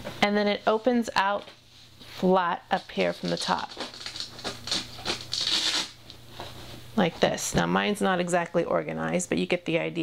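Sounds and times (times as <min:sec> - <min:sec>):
fabric rustling and scratching: 0:03.1 - 0:06.7.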